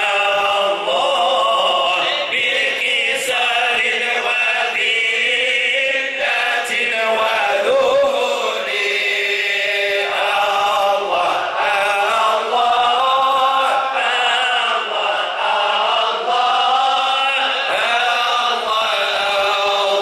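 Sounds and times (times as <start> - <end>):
men chanting together: 0.0 - 20.0.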